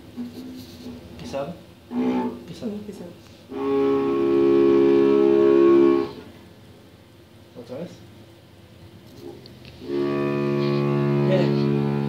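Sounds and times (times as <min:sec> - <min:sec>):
cello long bowed note: 0:01.9 - 0:02.5, 0:03.5 - 0:06.3, 0:09.8 - 0:12.0.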